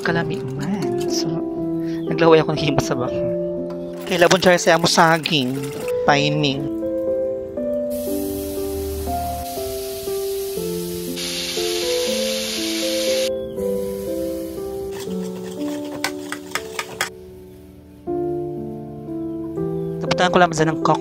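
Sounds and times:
piano background music: 0.0 - 21.0
fat sizzling in a hot wok: 7.9 - 15.7.

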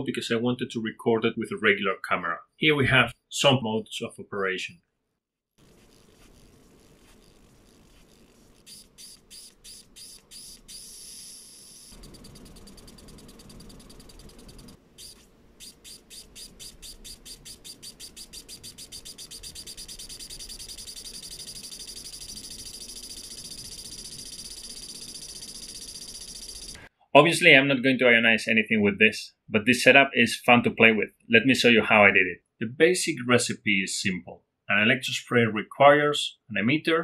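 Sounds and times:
electrical ticking: 11.7 - 26.8.

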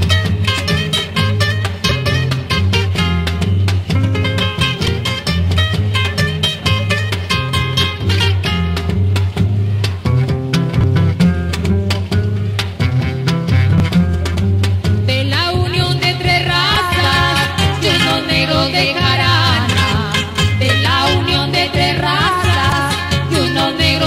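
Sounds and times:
guitar music with bass line: 0.0 - 24.0.

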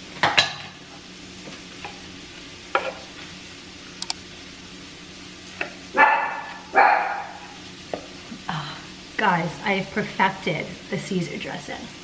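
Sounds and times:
utensils clicking: 4.0 - 4.2
dog barking: 6.0 - 7.6.

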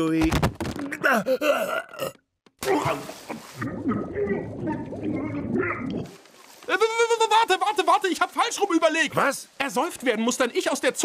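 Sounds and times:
cartoon grunts and groans: 0.8 - 6.1.

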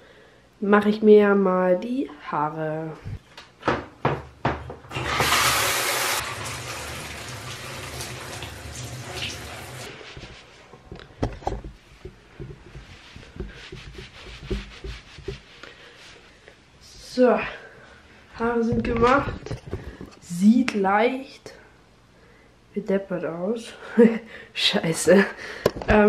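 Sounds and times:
water running from a tap: 4.9 - 9.9
knocks and handling sounds: 10.1 - 15.7
towel rubbing wet hair: 12.3 - 16.4.

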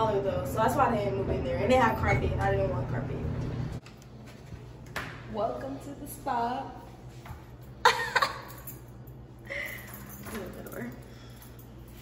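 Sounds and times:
woman laughing: 7.8 - 8.6.

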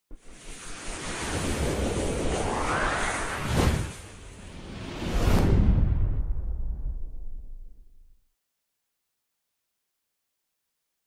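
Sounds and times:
rushing whoosh: 0.2 - 7.2
low rumble: 1.4 - 8.2.

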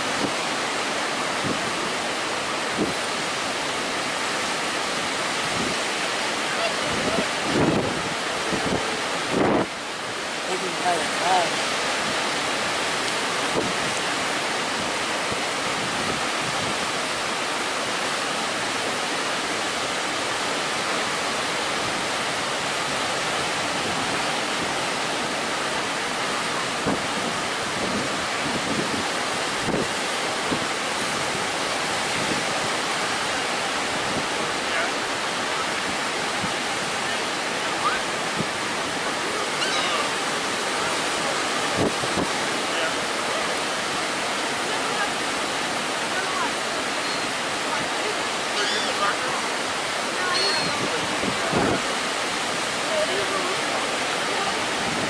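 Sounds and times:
ocean waves breaking on sand: 0.0 - 55.0.

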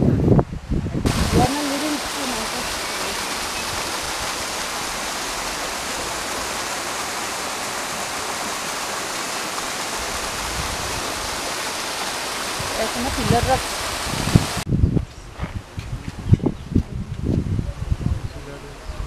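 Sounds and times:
waterfall rushing: 1.0 - 14.7.

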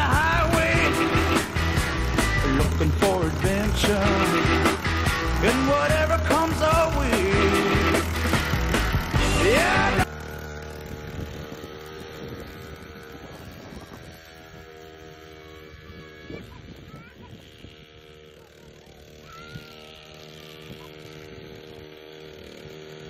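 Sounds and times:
mini dirt bike motor whining: 0.0 - 23.0.

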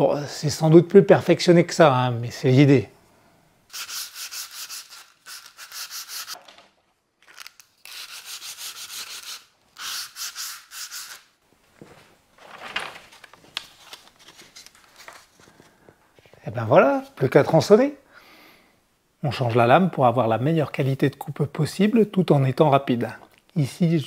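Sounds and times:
hand sanding wood: 3.7 - 6.4, 7.9 - 11.2.

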